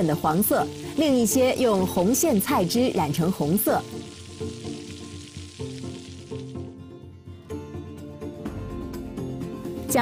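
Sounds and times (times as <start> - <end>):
egg batter sizzling in a pan: 0.0 - 6.8
background music: 0.0 - 10.0.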